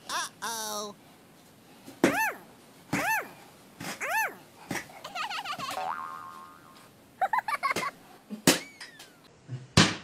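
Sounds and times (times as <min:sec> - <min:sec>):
cartoon boing sound effects: 0:05.7 - 0:06.8
wobbling warble: 0:05.8 - 0:06.8.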